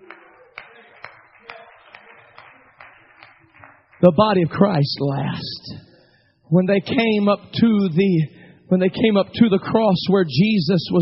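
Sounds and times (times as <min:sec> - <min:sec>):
congregation clapping: 0:00.0 - 0:05.6.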